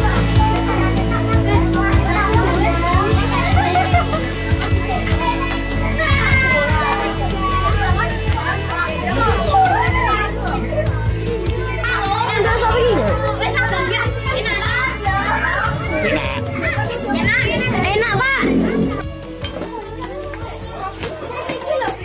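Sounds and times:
background music: 0.0s - 22.0s
children talking and calling out: 0.0s - 22.0s.

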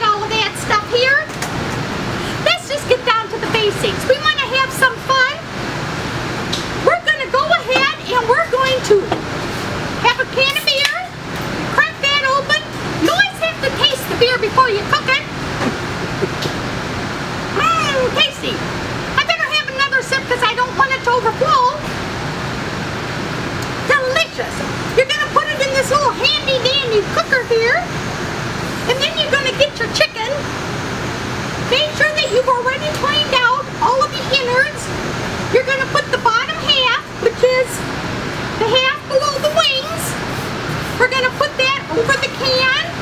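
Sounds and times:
steady background noise: 0.0s - 43.0s.

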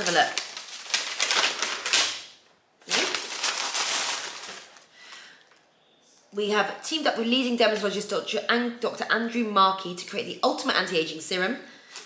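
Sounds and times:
paper packaging rustling: 0.0s - 5.2s.

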